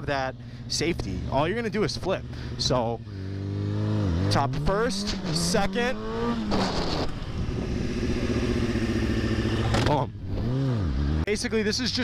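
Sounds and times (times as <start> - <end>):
motorcycle engine accelerating: 1.0 - 11.9
wind noise: 6.1 - 9.2.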